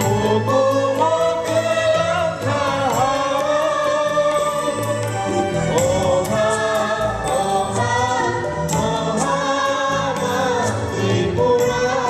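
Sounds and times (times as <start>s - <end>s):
keyboard and guitar band: 0.0s - 12.0s
men and women singing in chorus: 0.0s - 12.0s.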